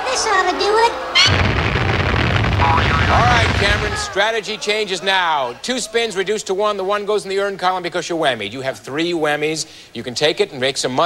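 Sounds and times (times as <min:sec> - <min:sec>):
cartoon dynamite explosion: 0:01.2 - 0:04.2.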